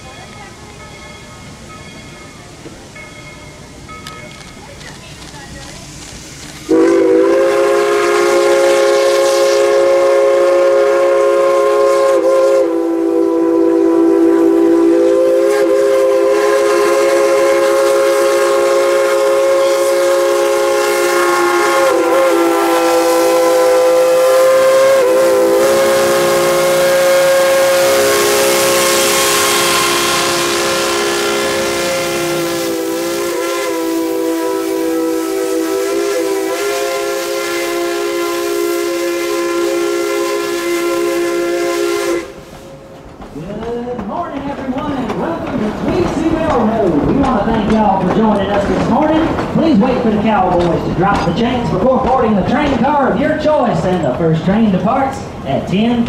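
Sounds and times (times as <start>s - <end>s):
steam hissing: 0.0s - 54.0s
steam locomotive chime whistle: 6.7s - 42.4s.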